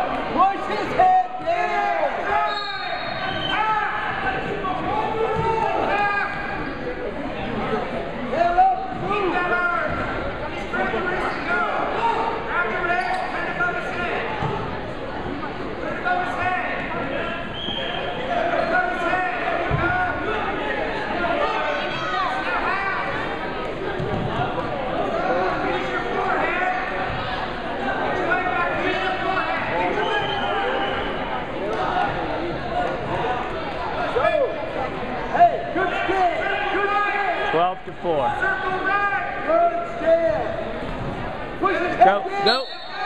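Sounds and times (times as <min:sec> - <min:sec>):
spectators chattering: 0:00.0 - 0:43.0
voices shouting in a gymnasium: 0:00.0 - 0:43.0
shoe squeaks: 0:12.9 - 0:13.4.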